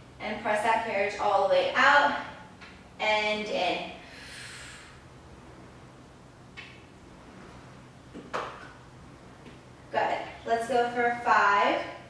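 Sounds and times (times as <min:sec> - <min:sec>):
low room hum: 0:00.0 - 0:12.0
woman breathy exhale: 0:04.0 - 0:05.0.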